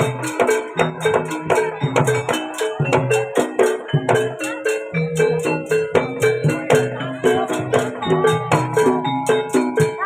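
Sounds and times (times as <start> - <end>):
gamelan drums and gongs: 0.0 - 10.0.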